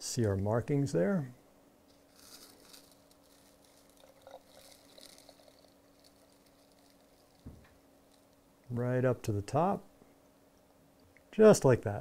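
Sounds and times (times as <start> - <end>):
water trickling into bottle: 2.2 - 7.6.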